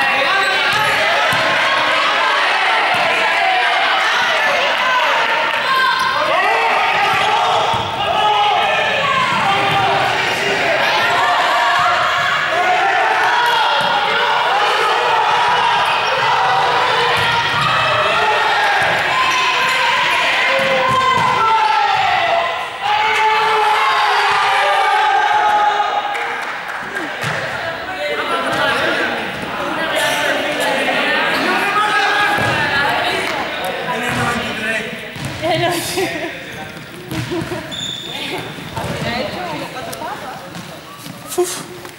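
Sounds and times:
players calling and shouting: 0:00.0 - 0:41.9
ball striking the floor: 0:37.1 - 0:37.5.

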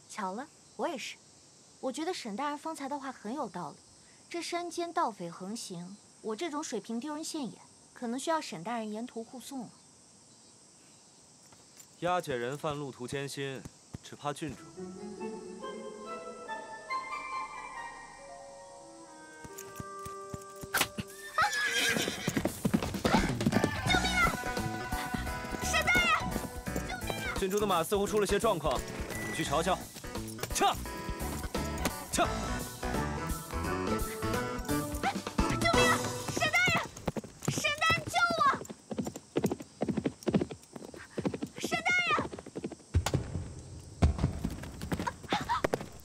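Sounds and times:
background music: 0:14.4 - 0:36.5
hooves stamping and clattering: 0:19.4 - 0:21.1, 0:21.7 - 0:46.0
galloping hoofbeats: 0:19.4 - 0:43.2, 0:44.0 - 0:46.0
high cries: 0:20.2 - 0:28.0
horse whinnying: 0:20.8 - 0:27.4.

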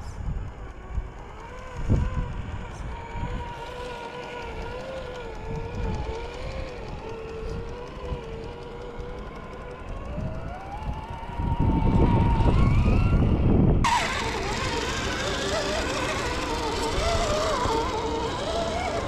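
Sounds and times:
toy car electric motor whining: 0:00.1 - 0:19.0.

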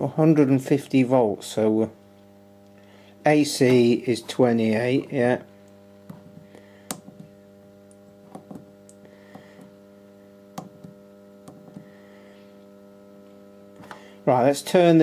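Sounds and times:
inverter humming: 0:00.0 - 0:15.0.

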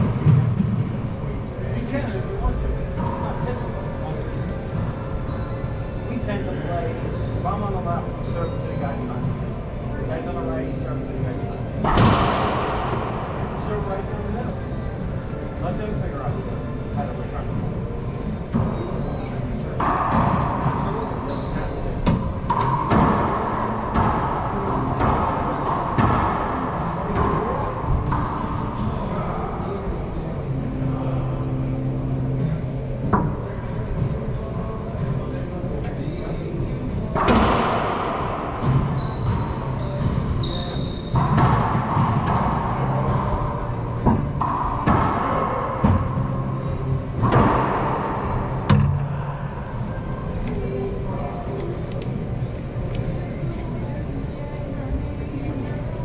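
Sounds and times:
racquetball hits echoing in court: 0:11.8 - 0:13.9, 0:19.8 - 0:29.0, 0:37.1 - 0:49.7.

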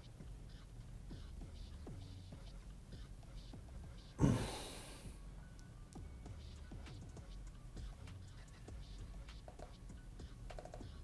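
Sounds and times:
quiet background music: 0:00.0 - 0:11.0
breath blown into microphone: 0:04.2 - 0:05.1.

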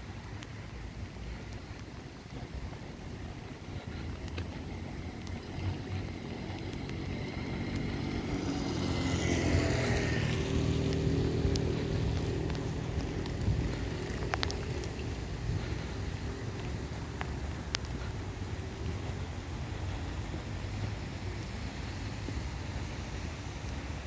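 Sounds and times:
wind on microphone: 0:00.0 - 0:24.0
motor passing by: 0:03.5 - 0:15.9.

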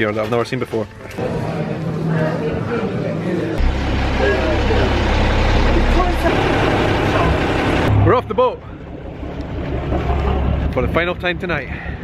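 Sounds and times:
boat engine droning: 0:03.6 - 0:10.7.

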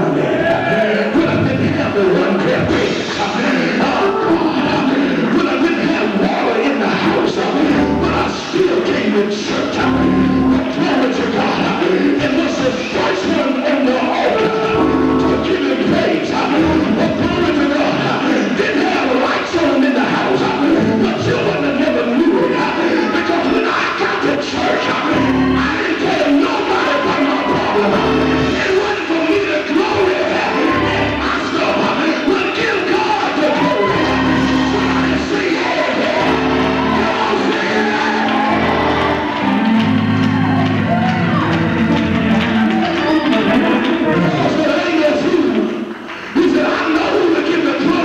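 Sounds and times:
congregation singing and calling out: 0:00.0 - 0:48.0.

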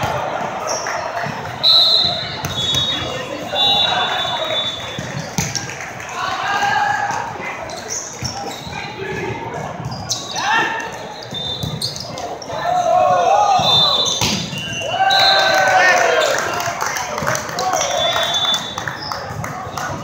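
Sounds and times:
players shouting: 0:12.2 - 0:18.7
volleyball slaps: 0:13.6 - 0:14.7.

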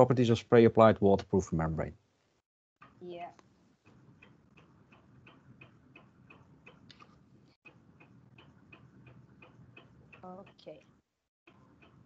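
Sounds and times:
faint even ticking: 0:02.8 - 0:12.0.

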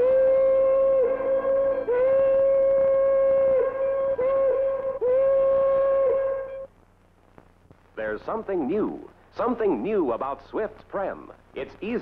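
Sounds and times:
steam locomotive whistle blasts: 0:00.0 - 0:06.7.

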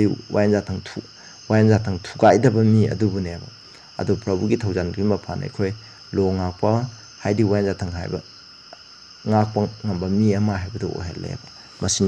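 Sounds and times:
man speaking: 0:00.0 - 0:08.2, 0:09.3 - 0:12.0.

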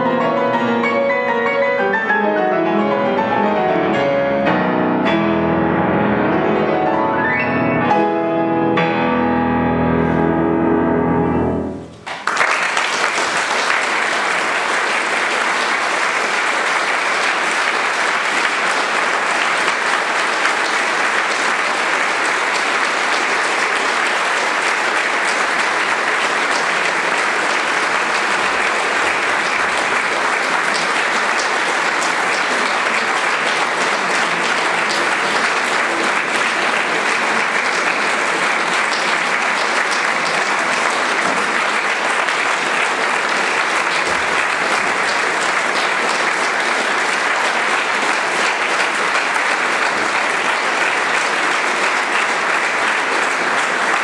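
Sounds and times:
audience applauding: 0:11.9 - 0:54.0.

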